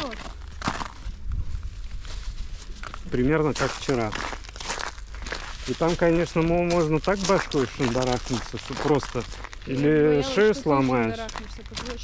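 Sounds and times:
footsteps on crusted snow: 0.0s - 12.0s
low microphone rumble: 0.0s - 12.0s.

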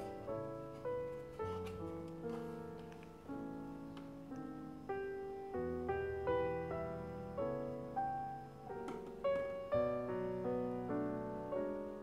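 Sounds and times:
gentle piano music: 0.0s - 12.0s.

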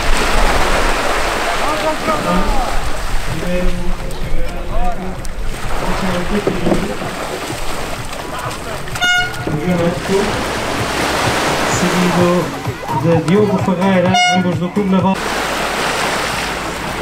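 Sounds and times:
shallow surf splashing: 0.0s - 17.0s
horn toot: 8.8s - 10.9s, 13.9s - 14.8s.

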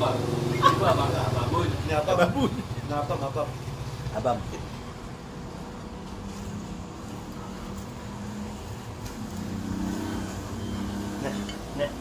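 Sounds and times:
vehicle engine idling: 0.0s - 9.0s.

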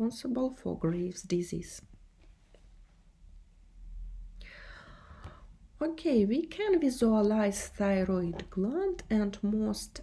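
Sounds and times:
woman speaking: 0.0s - 2.0s, 5.8s - 10.0s
low electrical hum: 0.0s - 10.0s
woman breathing in: 4.4s - 5.6s.

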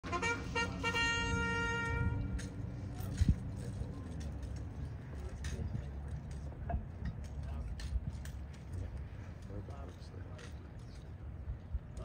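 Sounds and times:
horn toots: 0.0s - 2.5s.

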